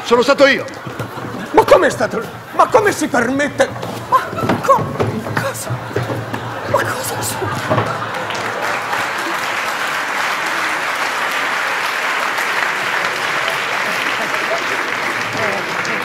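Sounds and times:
audience applauding: 4.0s - 16.0s.

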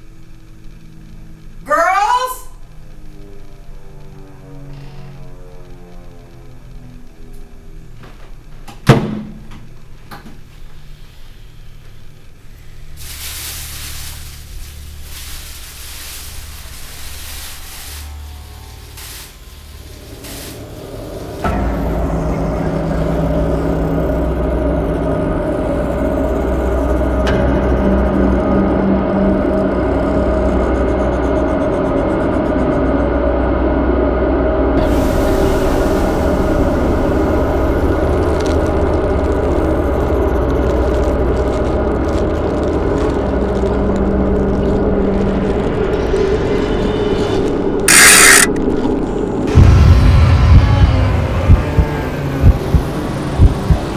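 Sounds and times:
low drone film score: 0.0s - 8.8s, 9.4s - 53.9s
loud dense drone: 10.8s - 53.9s.

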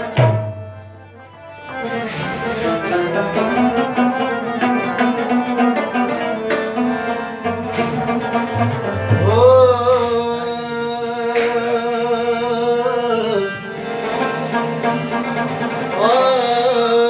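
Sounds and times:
tabla strokes: 0.0s - 11.8s
harmonium melody: 0.0s - 17.0s.

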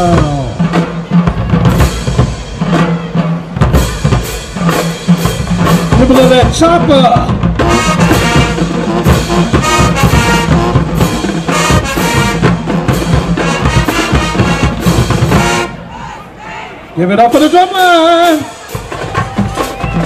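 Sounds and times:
marching snare and bass drums: 0.0s - 15.9s, 17.3s - 20.0s
brass horns playing chords: 7.5s - 16.1s.

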